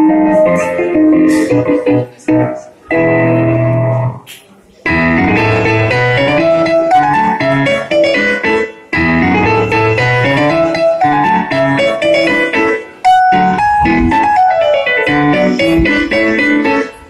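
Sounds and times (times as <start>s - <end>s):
piano music: 0.0s - 4.3s, 4.9s - 17.0s.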